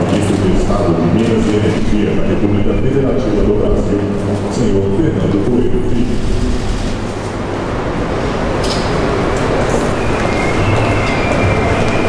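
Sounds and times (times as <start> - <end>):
loud rumbling noise: 0.0 - 12.0.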